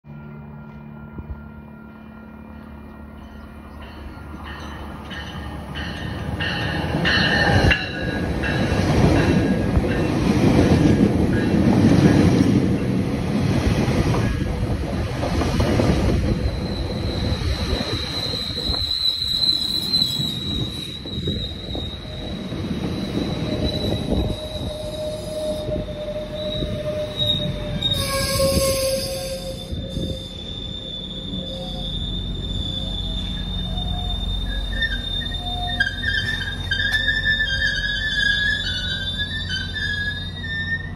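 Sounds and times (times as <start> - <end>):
train wheels rumbling on rail: 2.5 - 40.9
lower squeal tone: 15.9 - 40.9
high-pitched brake squeal: 16.2 - 40.9.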